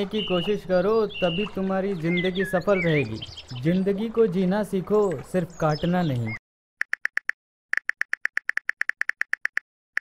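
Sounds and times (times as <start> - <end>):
phone keyboard taps: 6.8 - 10.0.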